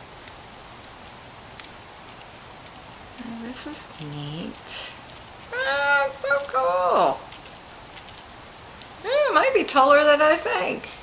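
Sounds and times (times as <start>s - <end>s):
faint plastic clicks and ticks: 0.2s - 6.6s.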